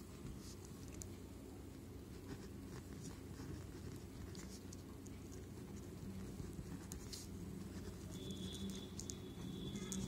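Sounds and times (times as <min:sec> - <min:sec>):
low steady hum: 0:00.0 - 0:10.0
pen scratching on paper: 0:02.1 - 0:10.0.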